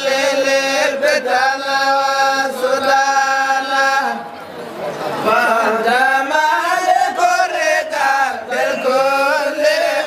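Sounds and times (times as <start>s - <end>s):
devotional chanting voices: 0.0s - 10.0s.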